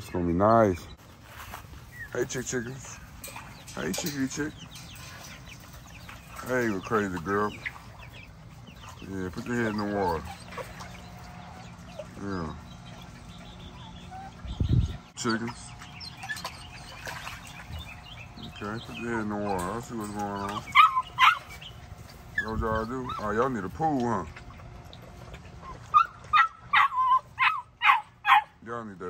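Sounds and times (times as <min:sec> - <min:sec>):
chicks chirping: 0:00.0 - 0:28.9
puppy yelping: 0:16.1 - 0:16.9, 0:20.6 - 0:21.7, 0:22.3 - 0:23.5, 0:25.6 - 0:28.6.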